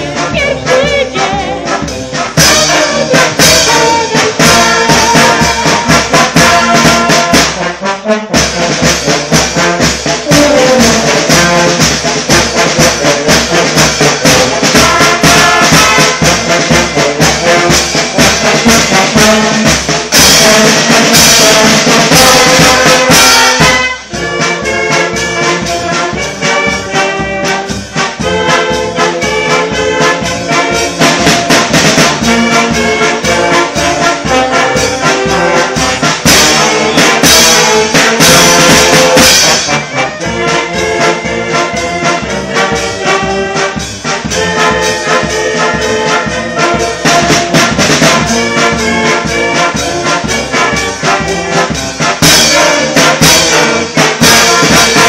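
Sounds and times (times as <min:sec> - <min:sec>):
brass band playing: 0:00.0 - 0:55.0
steady percussive beat: 0:00.0 - 0:55.0.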